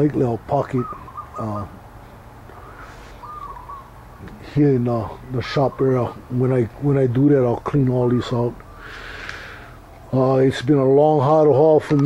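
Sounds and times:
bird calling: 0.0s - 10.3s.

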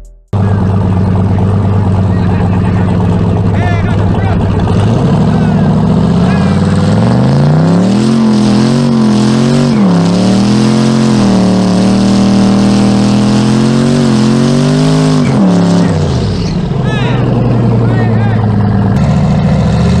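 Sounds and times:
truck engine revving at high rpm: 0.4s - 20.0s.

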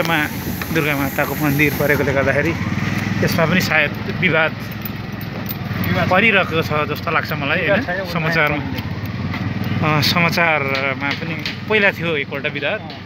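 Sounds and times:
people talking: 0.0s - 2.6s, 3.2s - 4.6s, 5.8s - 8.8s, 9.8s - 13.0s
small engine running: 0.2s - 12.6s.

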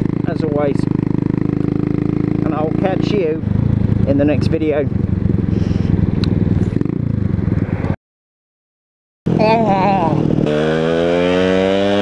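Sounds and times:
motorcycle engine accelerating: 0.0s - 8.0s, 9.3s - 12.0s.

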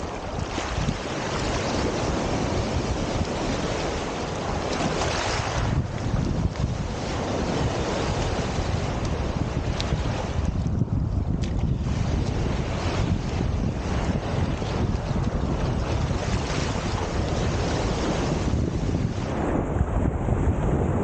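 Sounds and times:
waves washing over pebbles: 0.0s - 10.8s, 11.4s - 19.3s
wind buffeting microphone: 0.0s - 21.0s.

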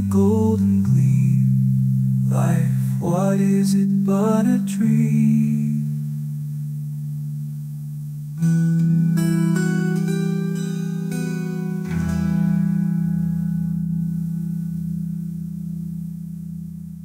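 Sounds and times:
acoustic guitar folk music: 0.0s - 17.0s.

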